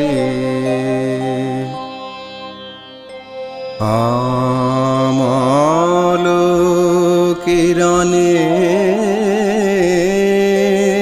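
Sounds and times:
man singing long notes: 0.0 - 2.6, 3.8 - 11.0.

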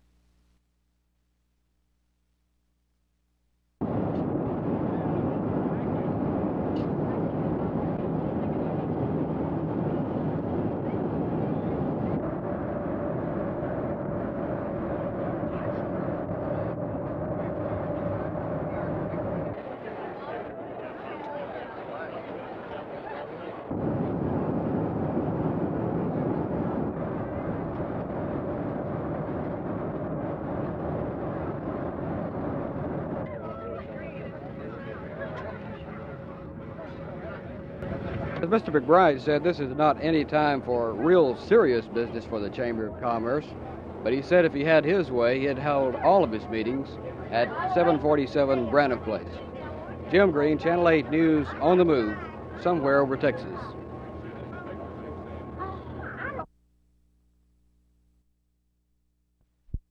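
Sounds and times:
jet airliner cabin noise: 3.8 - 56.5
passengers murmuring: 15.0 - 23.8, 33.0 - 56.5.

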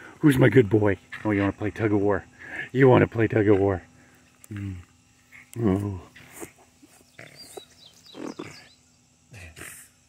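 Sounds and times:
puppy growling: 5.4 - 8.8.

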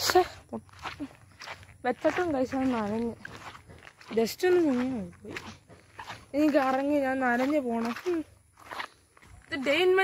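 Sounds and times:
footsteps on dirt and grass: 0.0 - 10.0
person speaking: 1.8 - 3.4, 4.0 - 5.6.

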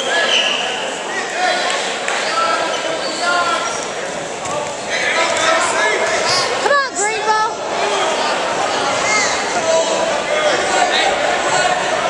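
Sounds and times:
voices calling out with echo: 0.0 - 12.0
shoes squeaking on mat: 2.2 - 4.7.

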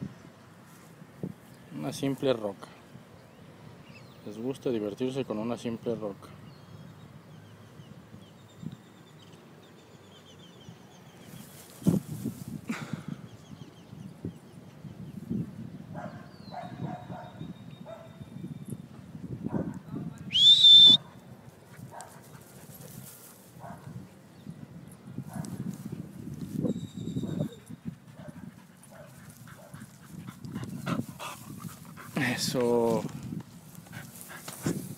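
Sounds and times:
wind rumble on microphone: 10.6 - 20.5, 21.1 - 34.9.

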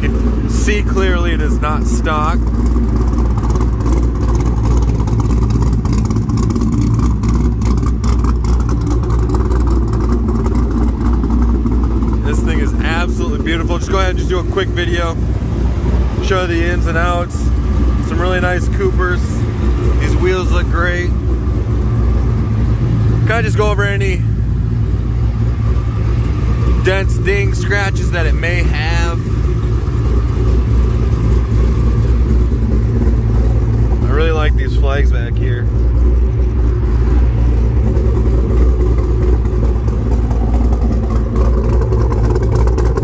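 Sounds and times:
car engine idling: 0.0 - 43.0.

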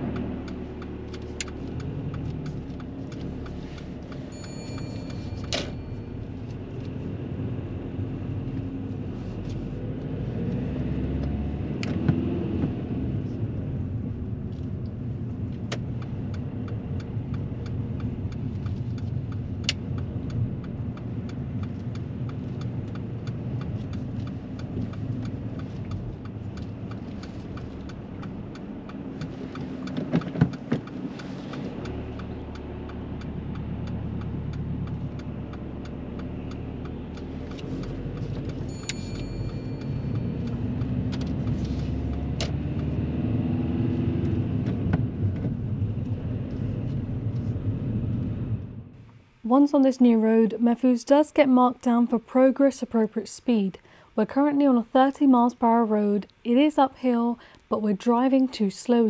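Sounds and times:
turn indicator ticking: 0.0 - 46.6
car engine: 0.0 - 49.4.

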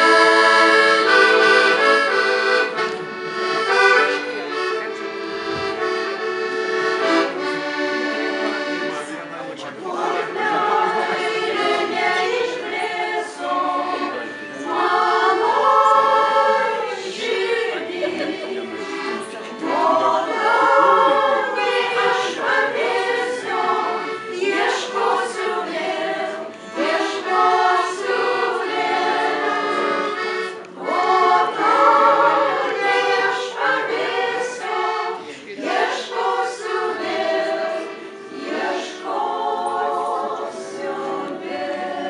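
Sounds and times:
women singing in harmony: 0.0 - 2.5, 9.8 - 42.0
piano accordion: 0.0 - 42.0.

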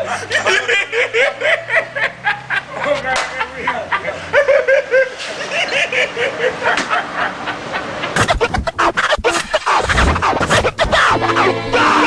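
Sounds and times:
person laughing hard: 8.1 - 12.0.

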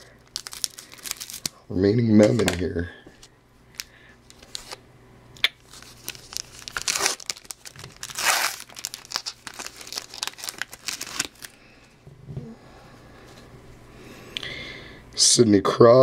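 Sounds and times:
wrapper crinkling and rustling: 0.2 - 1.6, 3.8 - 4.8, 5.6 - 11.6.

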